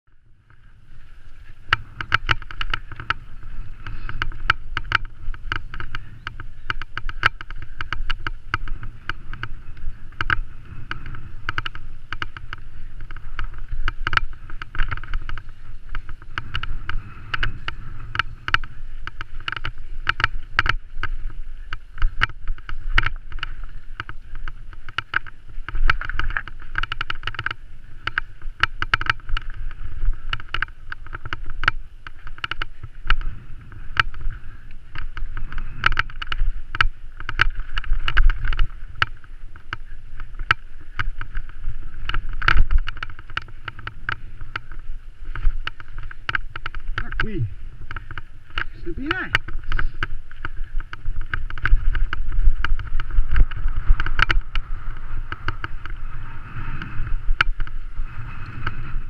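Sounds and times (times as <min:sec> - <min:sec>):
muffled tyre and wind rumble: 0:00.1 - 0:59.0
bike and camera clicks and knocks: 0:00.5 - 0:59.0.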